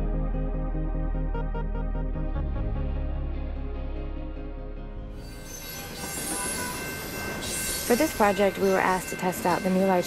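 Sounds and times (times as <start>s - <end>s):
high squeal of train wheels: 5.2s - 10.0s
train wheels rumbling on rail: 5.7s - 10.0s.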